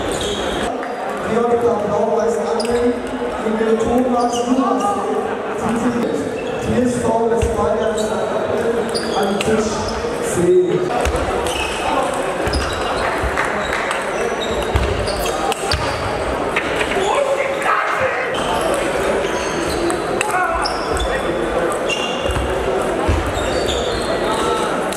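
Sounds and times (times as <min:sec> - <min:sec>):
background chatter of voices: 0:00.0 - 0:24.9.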